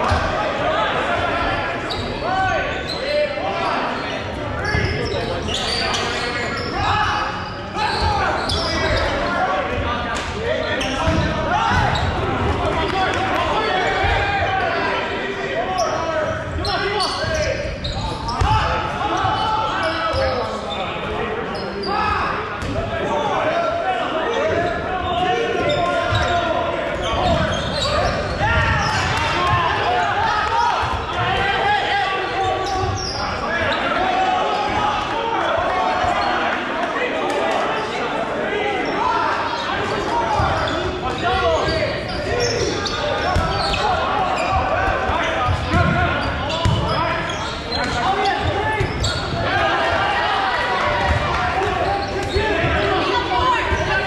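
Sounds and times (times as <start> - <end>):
players shouting: 0.0 - 54.0.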